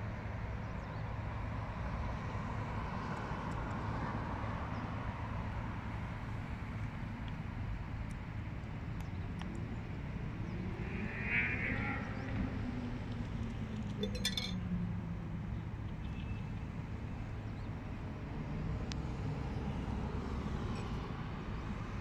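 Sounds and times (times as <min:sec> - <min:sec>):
distant road traffic rumble: 0:00.6 - 0:22.0.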